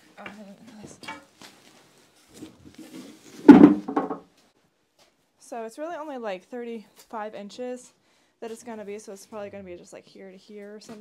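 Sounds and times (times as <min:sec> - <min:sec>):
wooden slab thud: 0:03.4 - 0:04.3
light wooden knocks: 0:03.5 - 0:04.2.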